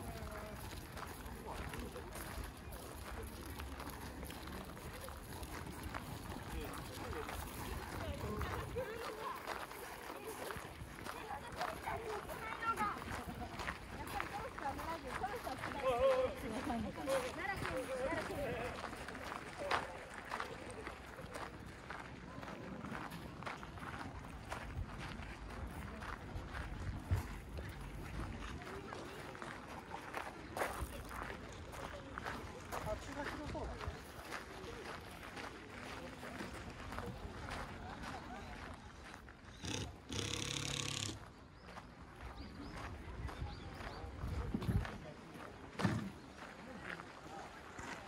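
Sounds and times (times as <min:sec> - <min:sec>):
people talking: 0:00.0 - 0:39.0, 0:42.4 - 0:48.0.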